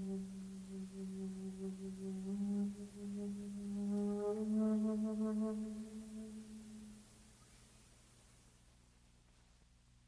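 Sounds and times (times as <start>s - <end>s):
jazz flute holding a low note: 0.0s - 7.5s.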